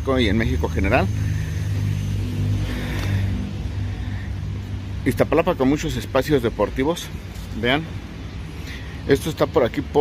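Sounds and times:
traffic engine hum: 0.0s - 10.0s
vehicle passing: 0.0s - 10.0s.

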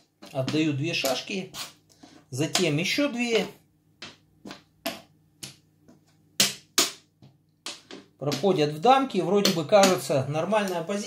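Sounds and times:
wooden pieces clicking on a board: 7.6s - 8.5s.

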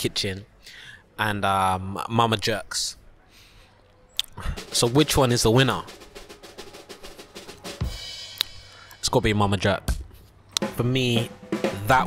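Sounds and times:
snare drum roll: 4.6s - 8.5s, 10.6s - 12.0s.

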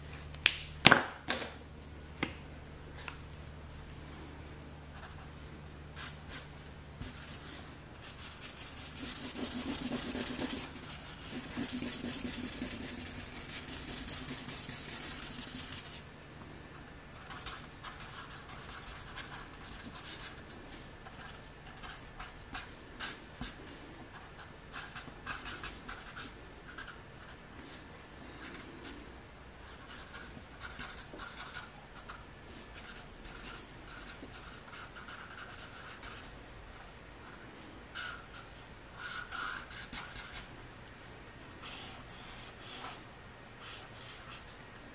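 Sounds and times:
marker rubbing on paper: 6.0s - 16.0s, 29.7s - 36.3s.

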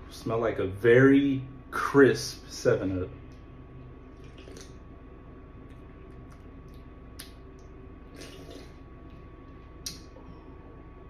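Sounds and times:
person sipping and swallowing: 4.2s - 4.8s, 8.0s - 8.9s.

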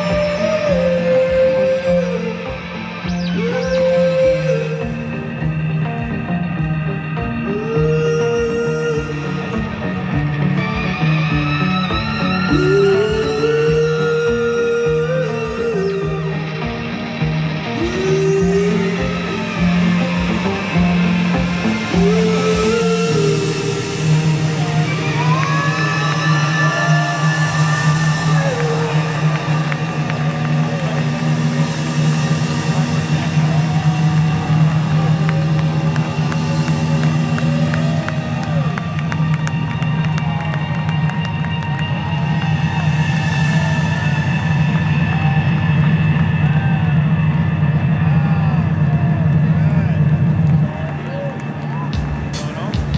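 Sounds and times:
crowd cheering and clapping: 0.0s - 52.9s
rock band sustained chord: 15.1s - 52.9s.

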